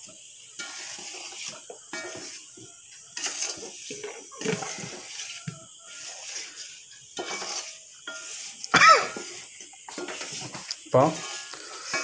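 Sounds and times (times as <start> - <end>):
spatula scraping metal pan: 0.4 - 12.0.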